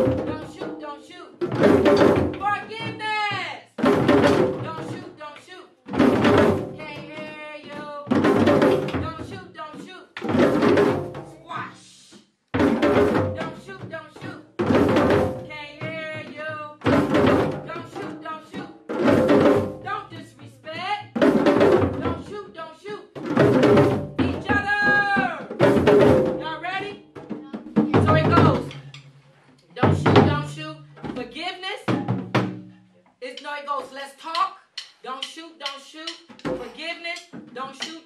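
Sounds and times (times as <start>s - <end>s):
drums struck together: 0.0s - 5.3s, 5.9s - 29.2s, 29.8s - 38.0s.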